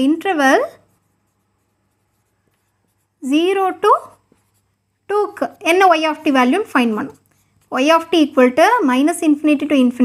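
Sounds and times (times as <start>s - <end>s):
woman speaking: 0.0s - 1.0s, 3.2s - 4.2s, 5.1s - 10.0s
low steady hum: 0.0s - 10.0s
marker pen on whiteboard: 0.0s - 10.0s.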